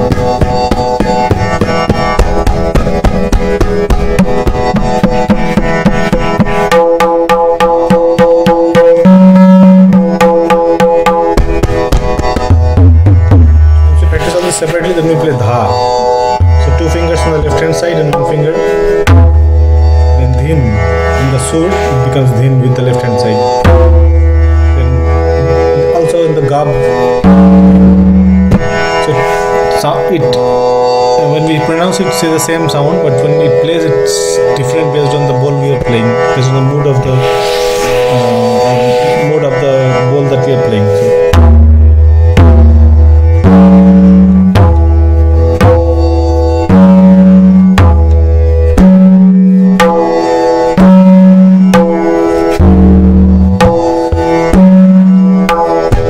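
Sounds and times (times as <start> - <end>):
steady drone: 0.0 - 56.0
tabla strokes: 0.0 - 56.0.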